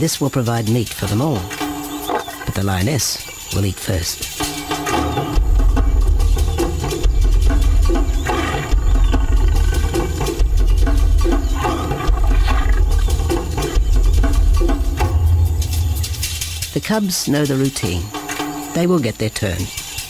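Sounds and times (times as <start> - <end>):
lioness growling: 7.9 - 13.8.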